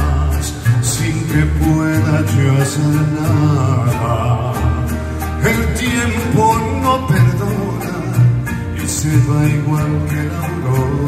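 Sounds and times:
mariachi band ballad: 0.0 - 11.0.

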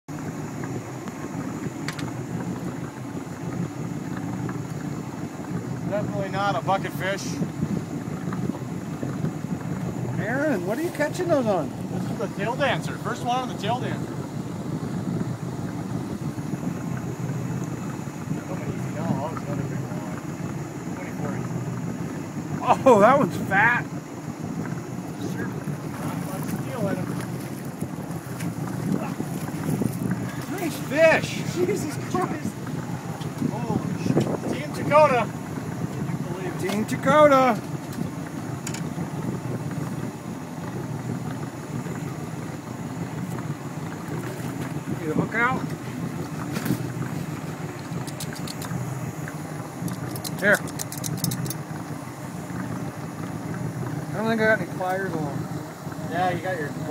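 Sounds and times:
outboard motor running: 0.0 - 56.9
wind on microphone: 0.1 - 56.9.

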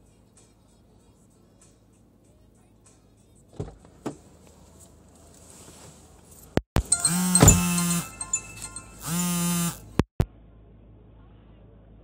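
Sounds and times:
phone ringtone chord: 6.8 - 9.8.

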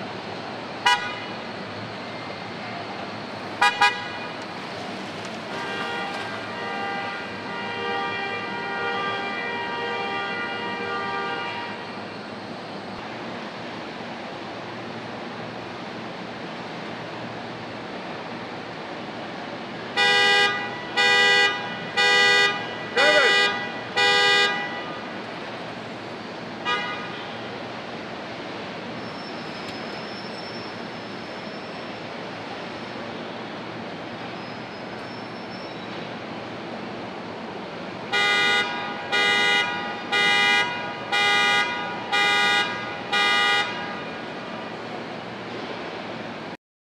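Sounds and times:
car horn blasts: 0.8 - 1.3, 3.6 - 4.3, 20.0 - 24.9, 26.6 - 27.4, 38.1 - 44.1.

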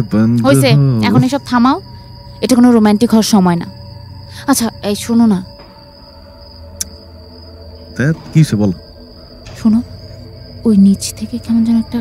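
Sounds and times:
crickets trilling: 0.0 - 12.0
low hum: 0.2 - 12.0.

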